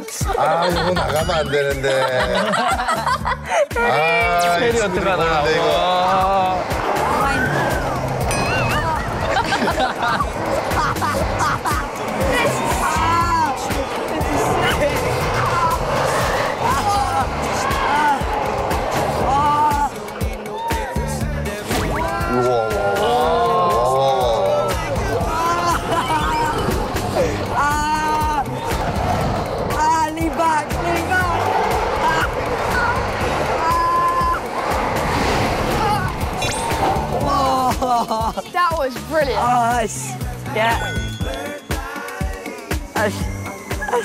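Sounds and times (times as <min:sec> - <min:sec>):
background music with beat: 0:00.0 - 0:44.0
riders yelling and whooping: 0:03.8 - 0:38.2
rush of roller coaster: 0:04.0 - 0:38.8.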